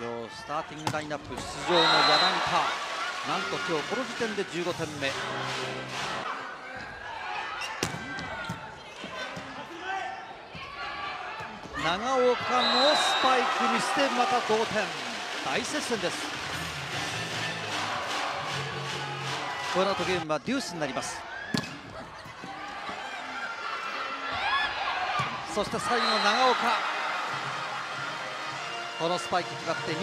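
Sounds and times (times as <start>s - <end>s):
players and crowd shouting: 1.5s - 30.0s.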